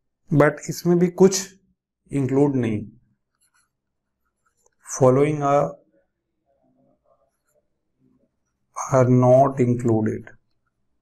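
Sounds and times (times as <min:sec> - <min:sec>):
man talking: 0:00.3 - 0:03.0, 0:04.8 - 0:05.8, 0:08.8 - 0:10.4
stylus scratching on pen tablet: 0:03.2 - 0:04.9, 0:07.0 - 0:07.7.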